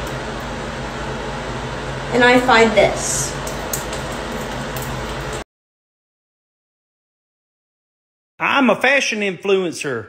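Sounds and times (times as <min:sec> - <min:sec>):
ventilation fan hum and hiss: 0:00.0 - 0:05.4.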